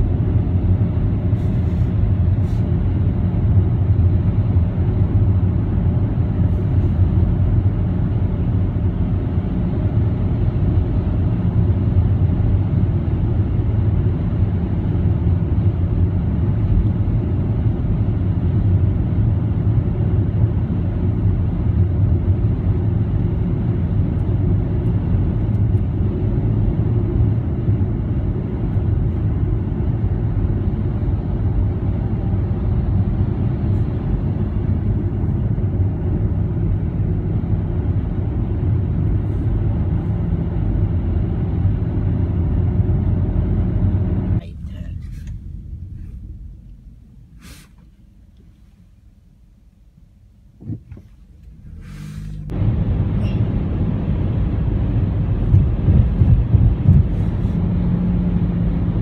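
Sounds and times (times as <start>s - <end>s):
road and engine rumble in car: 0.0s - 59.0s.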